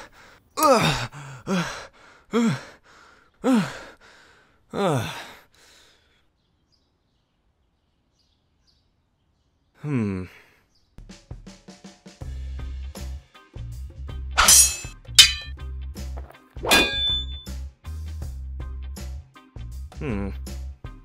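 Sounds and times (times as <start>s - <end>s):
pickaxe clanging against rock: 14.4s - 15.5s, 16.2s - 17.4s
background music with bass line: 17.3s - 21.0s.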